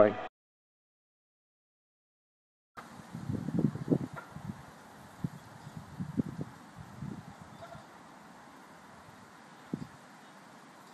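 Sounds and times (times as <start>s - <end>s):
wind buffeting microphone: 2.8s - 7.9s, 9.0s - 10.0s
steady faint hiss: 2.8s - 10.9s.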